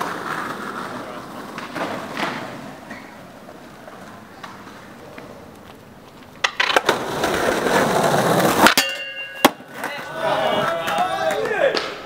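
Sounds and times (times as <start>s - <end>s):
skateboard clacking: 0.0s - 12.0s
skateboard wheels rolling on paving: 0.0s - 12.0s.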